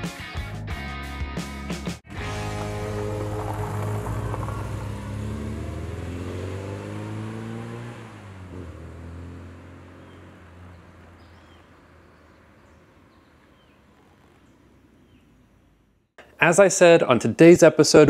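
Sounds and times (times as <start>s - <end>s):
car engine accelerating: 2.1s - 15.8s.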